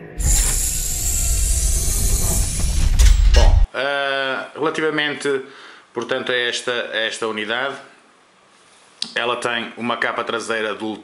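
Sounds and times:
deep rumble: 0.0s - 3.7s
hiss: 0.2s - 3.3s.

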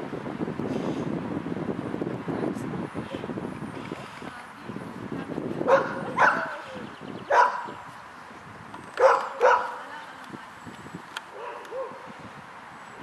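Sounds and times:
dog barking: 5.6s - 6.6s, 7.3s - 7.7s, 9.0s - 9.8s, 11.3s - 12.1s.

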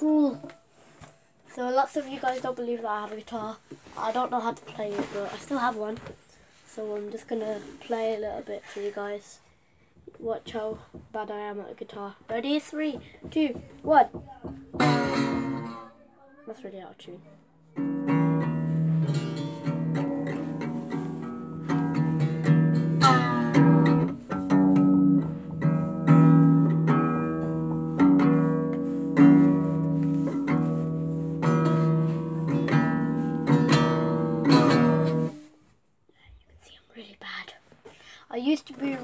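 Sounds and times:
out of tune guitar strumming: 13.8s - 15.9s, 17.8s - 35.5s.

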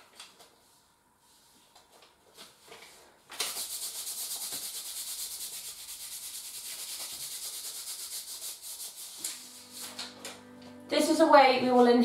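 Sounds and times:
tape rubbed on skin: 3.4s - 10.0s.

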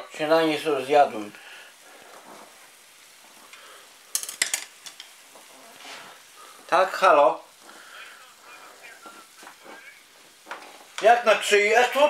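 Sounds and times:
food sizzling in a pan: 0.0s - 12.0s
metal spoon clinking on pan: 4.1s - 5.1s.

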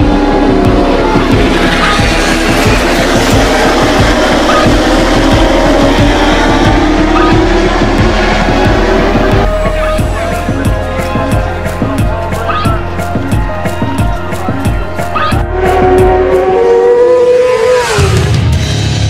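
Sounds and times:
background music with steady beat: 0.0s - 19.0s
racing motorcycle engines revving: 0.0s - 19.0s.

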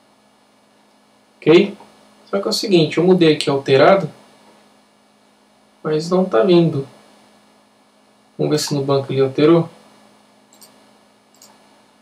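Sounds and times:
low steady hum: 0.0s - 12.0s
computer mouse clicks: 10.5s - 11.6s.

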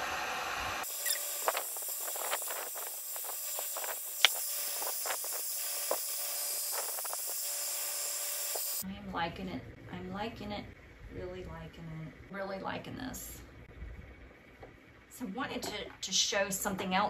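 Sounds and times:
heat gun hissing: 0.0s - 8.8s.

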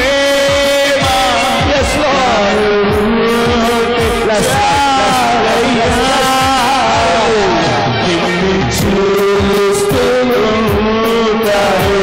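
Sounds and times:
deep drum thumps: 0.0s - 12.0s
gospel band accompaniment: 0.0s - 12.0s
man singing a long note: 0.0s - 12.0s.

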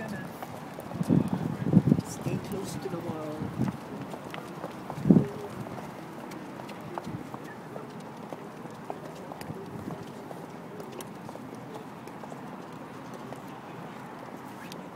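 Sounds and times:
footsteps of hard shoes on pavement: 0.0s - 14.9s.

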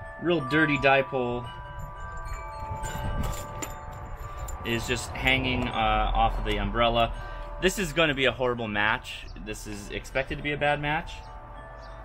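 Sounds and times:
chime-like tones ringing: 0.0s - 12.0s.

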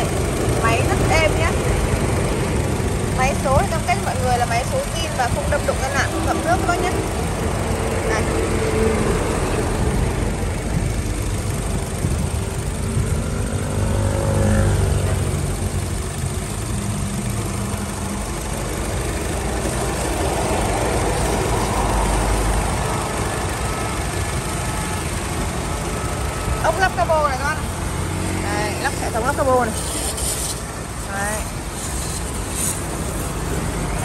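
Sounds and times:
car engine idling: 0.0s - 34.0s.

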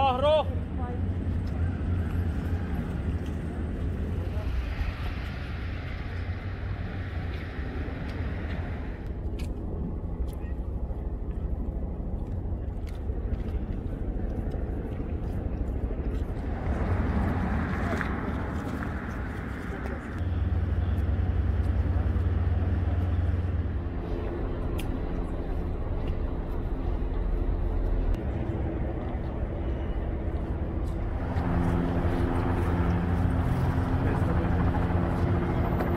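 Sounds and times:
low rumble: 0.6s - 35.9s.

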